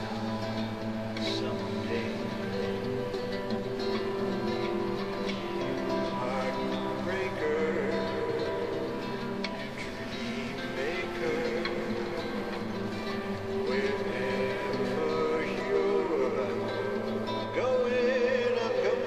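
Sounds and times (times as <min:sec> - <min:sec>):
classical guitar playing: 0:00.0 - 0:19.0.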